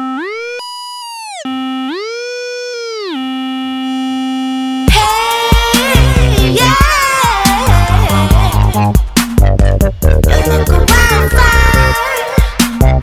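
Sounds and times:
synthesizer tone sliding: 0:00.0 - 0:05.0
electronic beat with drums: 0:04.9 - 0:13.0.

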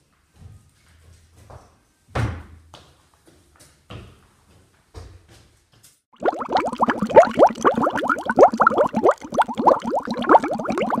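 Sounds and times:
rapid rising bubbling bloops: 0:06.2 - 0:11.0.

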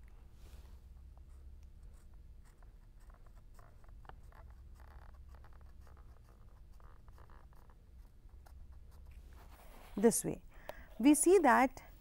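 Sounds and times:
low steady hum: 0:00.0 - 0:12.0
marker scratching on paper: 0:01.2 - 0:10.3.

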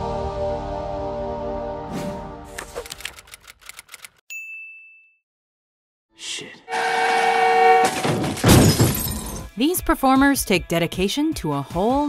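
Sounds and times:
typewriter key clacks: 0:02.8 - 0:04.2.

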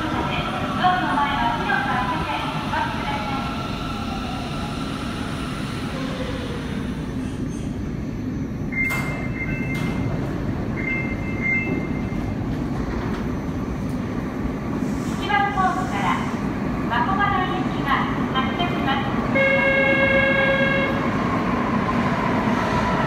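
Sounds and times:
subway train rumbling to a stop: 0:00.0 - 0:23.0.

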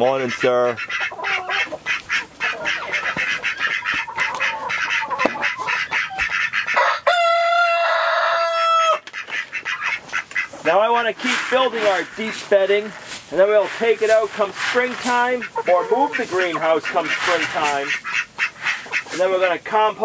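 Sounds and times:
chickens clucking: 0:00.0 - 0:20.0
rooster crowing: 0:06.7 - 0:09.1.

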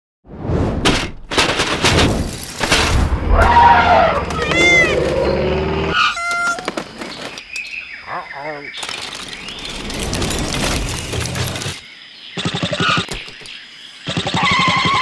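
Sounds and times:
cartoon animal calls: 0:03.5 - 0:05.2, 0:14.1 - 0:15.0.

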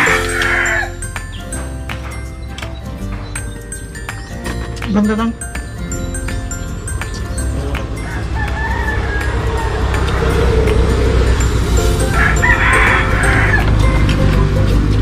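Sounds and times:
rooster crowing: 0:00.0 - 0:01.0, 0:08.0 - 0:11.0, 0:12.1 - 0:13.8
background music: 0:00.0 - 0:15.0.

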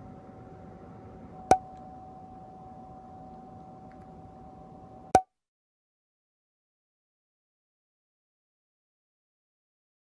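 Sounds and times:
steady thin tone: 0:00.0 - 0:05.3.

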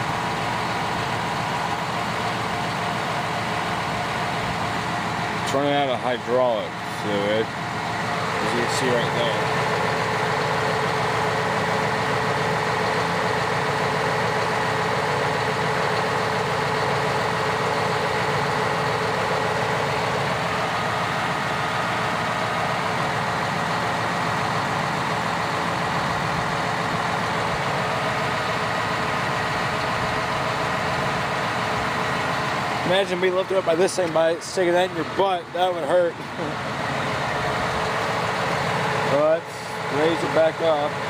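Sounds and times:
tractor diesel engine idling: 0:00.0 - 0:41.0.

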